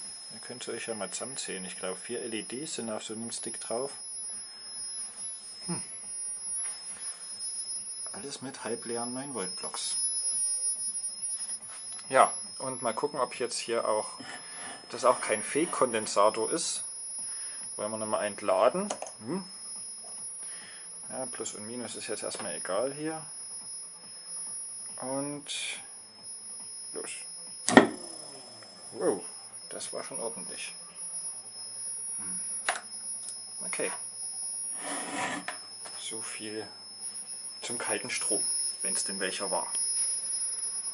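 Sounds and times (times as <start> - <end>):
high-pitched electronic whine: 0.0 - 40.9
man's short hm: 5.6 - 6.0.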